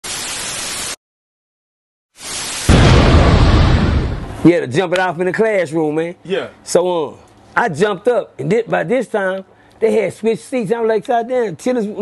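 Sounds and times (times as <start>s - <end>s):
loud boom with rumble: 2.7s - 4.5s.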